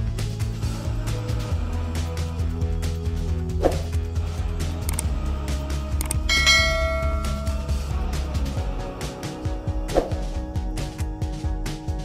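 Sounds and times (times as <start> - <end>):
background music: 0.0 - 12.0
bell chime: 6.2 - 8.0.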